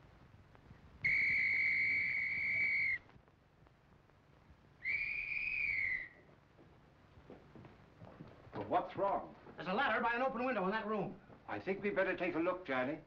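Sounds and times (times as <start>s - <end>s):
police whistle blasts: 1.0s - 3.0s, 4.8s - 6.2s.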